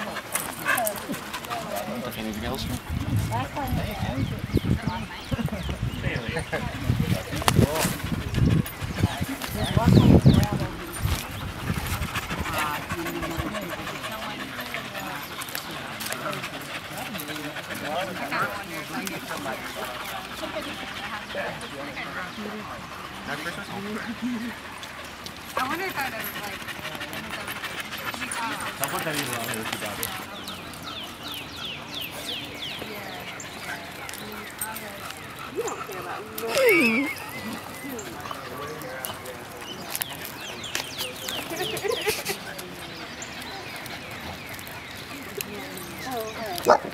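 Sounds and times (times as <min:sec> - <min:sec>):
dog panting: 0:00.0 - 0:04.6, 0:05.2 - 0:46.9
other dog sounds: 0:00.0 - 0:05.4, 0:06.1 - 0:46.9
people talking: 0:00.0 - 0:24.7, 0:25.6 - 0:46.9.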